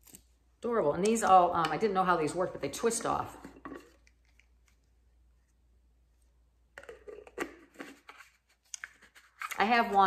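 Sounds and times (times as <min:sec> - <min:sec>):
tumbler lid scraping and clicking: 0:06.8 - 0:10.0.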